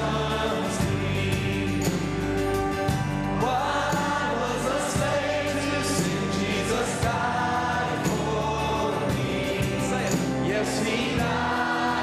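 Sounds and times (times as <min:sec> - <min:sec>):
choir singing: 0:00.0 - 0:02.4, 0:03.4 - 0:12.0.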